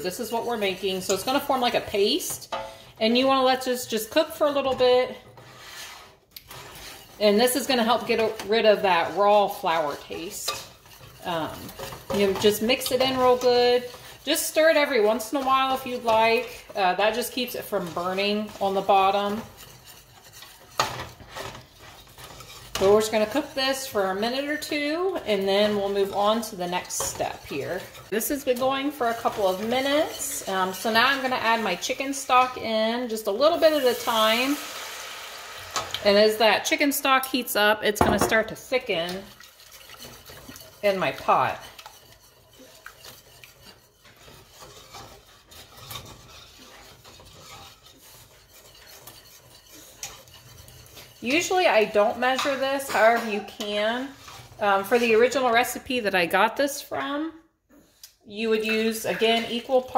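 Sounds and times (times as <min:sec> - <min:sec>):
whisk scraping a saucepan: 0:00.0 - 0:57.2, 0:58.0 - 0:59.9.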